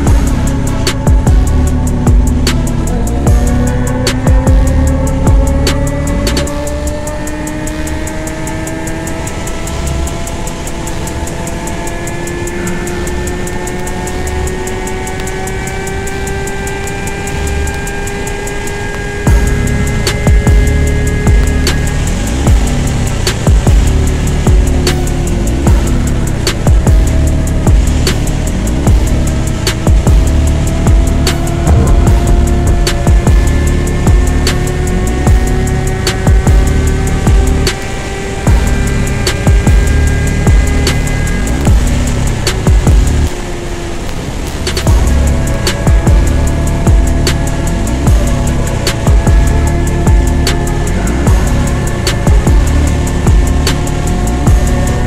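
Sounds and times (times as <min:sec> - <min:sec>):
music with drum beat: 0:00.0 - 0:18.5, 0:19.1 - 0:43.4, 0:44.5 - 0:55.0
motorcycle engine revving high: 0:00.0 - 0:55.0.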